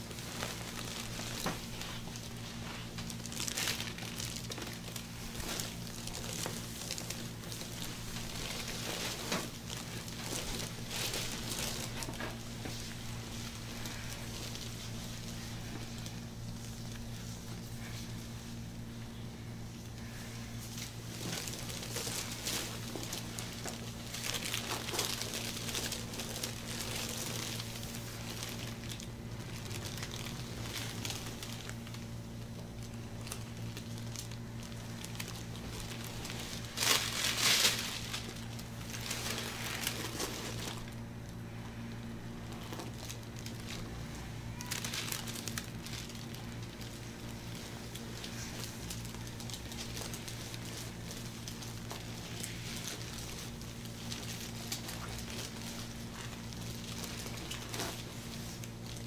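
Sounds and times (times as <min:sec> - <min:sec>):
glove crinkling and rustling: 0:00.0 - 0:59.0
low room hum: 0:00.0 - 0:59.0.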